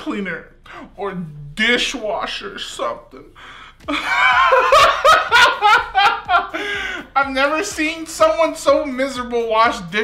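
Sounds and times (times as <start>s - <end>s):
man laughing loudly: 3.8s - 7.2s.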